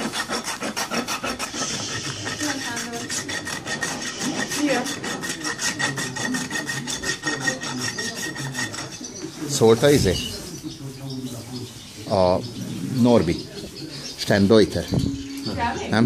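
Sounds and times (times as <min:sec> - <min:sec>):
rasp filing a hoof: 0:00.0 - 0:10.4.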